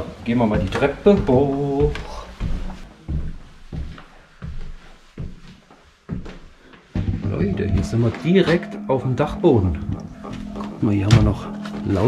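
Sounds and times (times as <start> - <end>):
footsteps climbing stairs: 0.0 - 8.7, 9.7 - 12.0.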